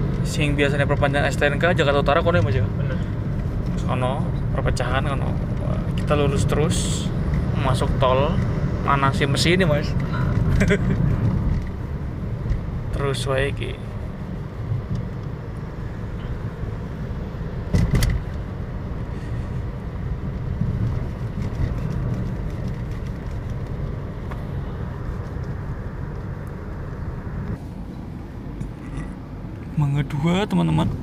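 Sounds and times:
car engine and tyre noise: 0:00.0 - 0:31.0
brief thump: 0:17.7 - 0:18.2.

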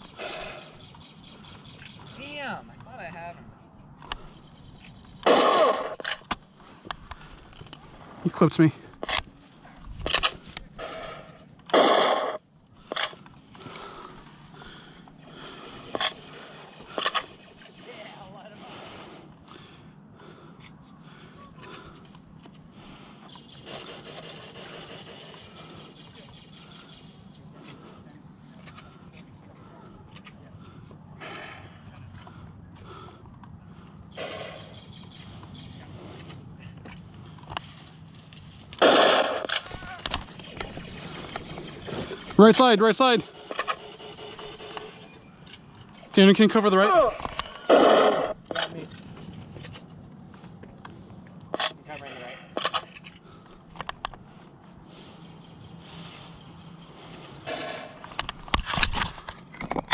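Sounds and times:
low outdoor background noise: 0:00.0 - 0:59.9
laser tag blaster shots: 0:05.2 - 0:06.0, 0:11.7 - 0:12.4, 0:38.8 - 0:39.5.

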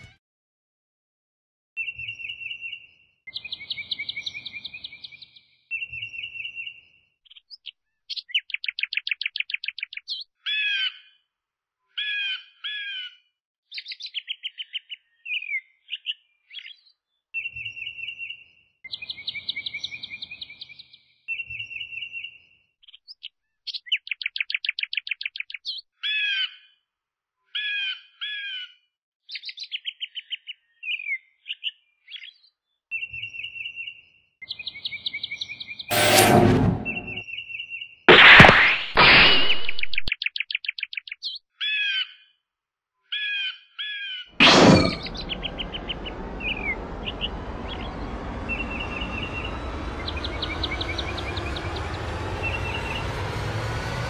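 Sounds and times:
birdsong chirps and trills: 0:01.8 - 0:11.2, 0:11.9 - 0:26.8, 0:27.5 - 0:35.9, 0:39.7 - 0:42.3, 0:43.2 - 0:53.1.

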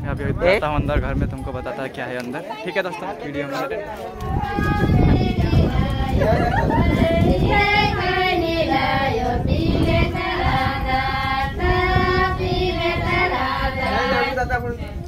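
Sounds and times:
women singing folk song: 0:04.0 - 0:14.4.

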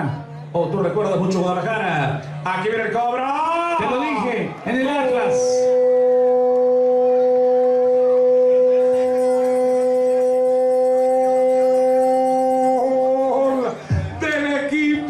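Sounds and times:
man holding long note: 0:05.6 - 0:14.2.

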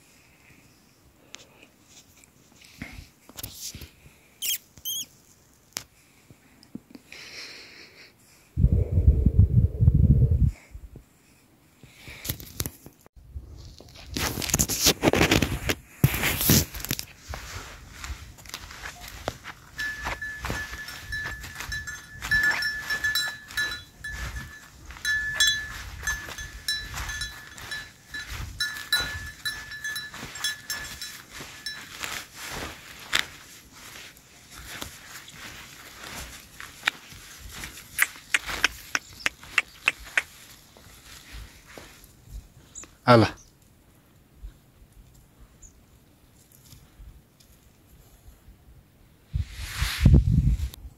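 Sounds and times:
horses cropping grass: 0:13.8 - 0:42.3
hooves on turf: 0:15.1 - 0:42.9
small bell tinkling: 0:19.5 - 0:32.3.

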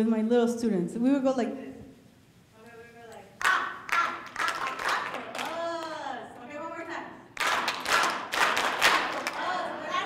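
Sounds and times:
people clapping: 0:03.4 - 0:06.5, 0:07.3 - 0:10.0.

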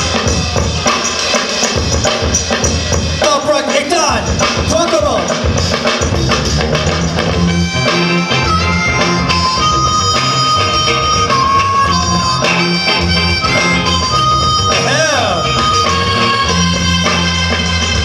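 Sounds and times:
drum and bass music: 0:00.0 - 0:18.0.

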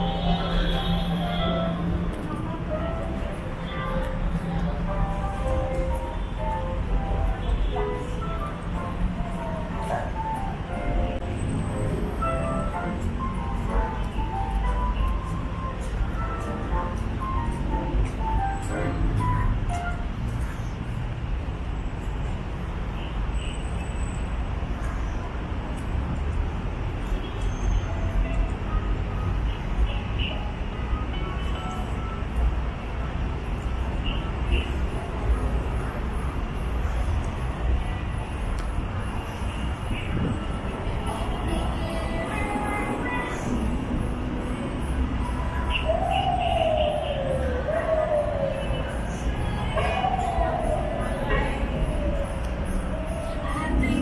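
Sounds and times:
distant traffic rumble: 0:00.0 - 0:23.1, 0:24.4 - 0:54.0.

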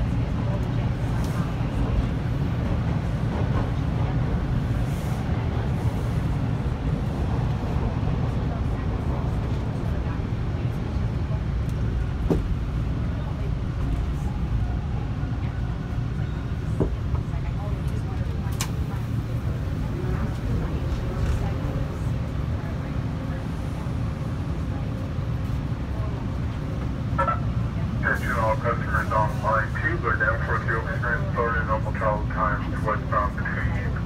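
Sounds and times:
passenger chatter: 0:00.0 - 0:34.0
subway train rumble: 0:00.0 - 0:34.0.

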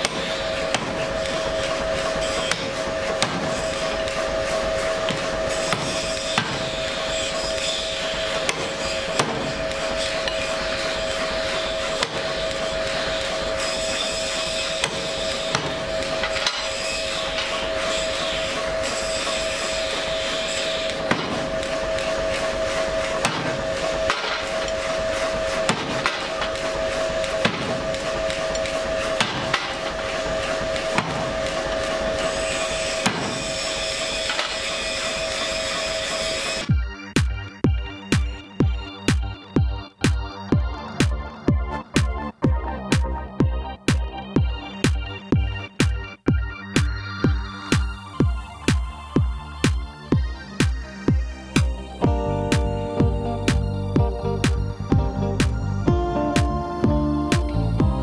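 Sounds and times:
hammer striking anvil: 0:05.0 - 0:06.9, 0:23.2 - 0:24.8, 0:25.7 - 0:26.6, 0:27.4 - 0:30.0, 0:30.7 - 0:31.6, 0:32.8 - 0:34.6
droning tone: 0:47.2 - 0:58.0.

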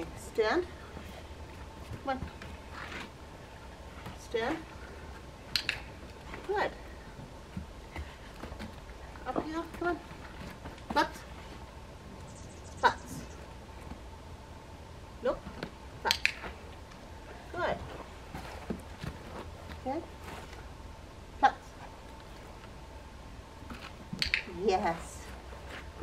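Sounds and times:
faint steady tone: 0:10.9 - 0:15.5.

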